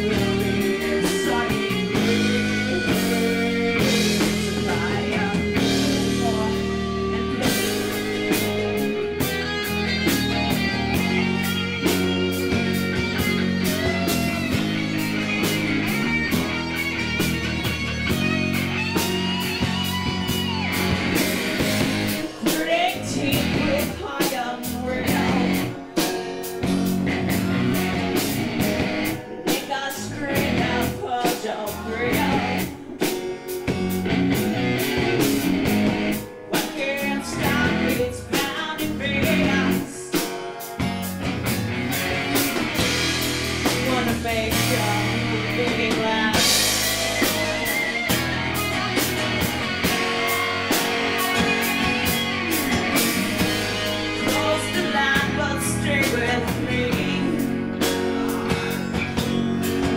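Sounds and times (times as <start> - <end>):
lead vocal singing: 0.0 - 9.2, 21.6 - 26.2, 29.1 - 33.4, 36.5 - 40.5, 42.7 - 59.9
drum kit beat: 0.0 - 59.9
electric guitar: 0.0 - 59.9.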